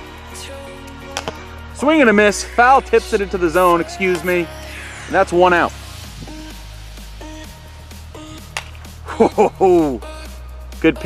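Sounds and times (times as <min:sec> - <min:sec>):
background music with bass: 0:00.0 - 0:11.0
man calling: 0:01.8 - 0:05.8, 0:09.1 - 0:10.2.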